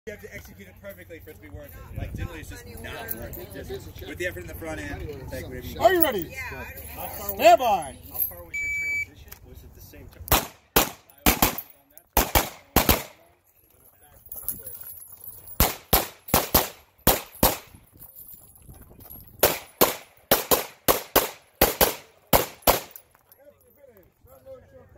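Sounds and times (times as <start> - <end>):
pistol shots: 10.3 - 13.2, 15.6 - 17.8, 19.4 - 23.0.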